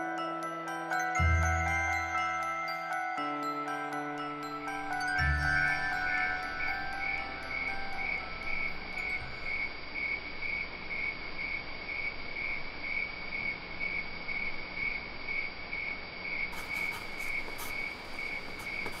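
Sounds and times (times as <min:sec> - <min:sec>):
crickets chirping: 0:04.5 - 0:19.0.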